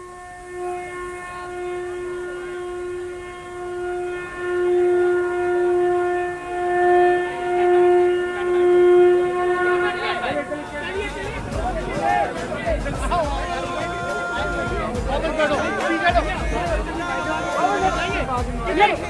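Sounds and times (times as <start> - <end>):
long steady horn note: 0.0 - 19.0.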